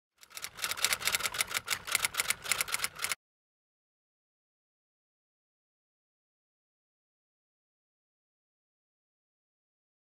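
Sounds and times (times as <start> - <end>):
typewriter keys clacking: 0.4 - 3.2.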